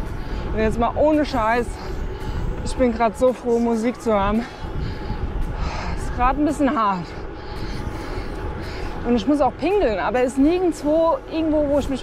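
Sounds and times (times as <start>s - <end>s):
strong low rumble: 0.0s - 12.0s
wind on microphone: 0.0s - 12.0s.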